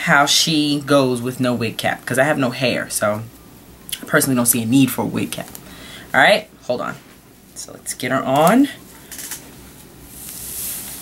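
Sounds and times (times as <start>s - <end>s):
wig rustling: 6.8s - 11.0s.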